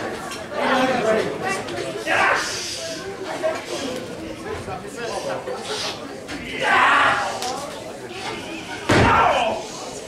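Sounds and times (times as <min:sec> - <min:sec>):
loud smack of a strike: 0:08.9 - 0:09.2.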